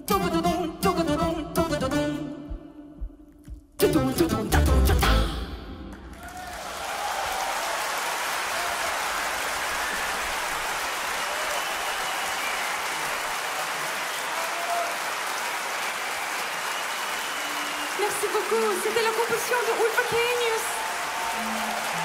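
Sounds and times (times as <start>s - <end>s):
audience applauding: 5.9s - 22.0s.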